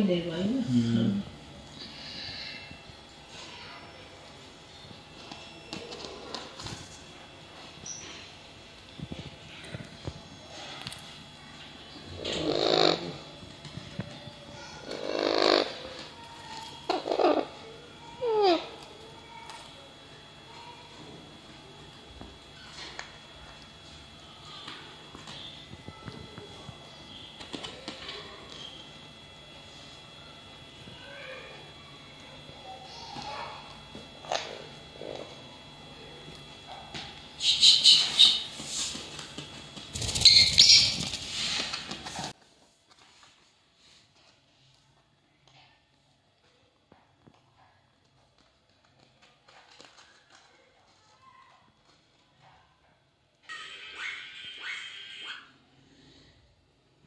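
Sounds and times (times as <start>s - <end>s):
parrot chatter: 12.1s - 13.3s, 14.6s - 18.8s, 37.4s - 38.6s, 40.0s - 41.3s, 53.5s - 55.6s
parakeet chirping: 37.4s - 38.5s, 40.2s - 41.0s.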